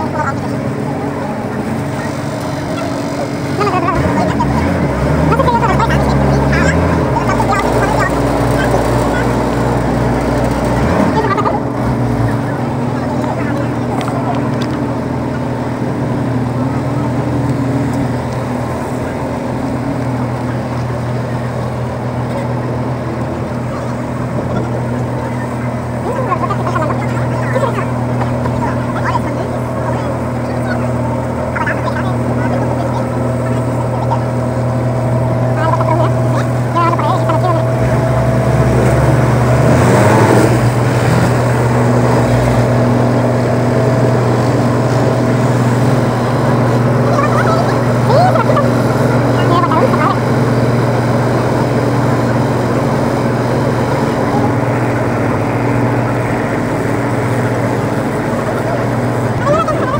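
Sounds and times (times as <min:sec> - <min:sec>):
ferry engine droning: 0:00.0 - 0:59.9
passengers' voices: 0:00.0 - 0:59.9.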